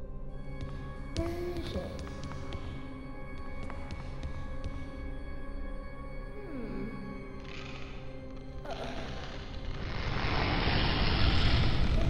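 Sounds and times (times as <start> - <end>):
dense rumbling noise: 8.7 - 12.0.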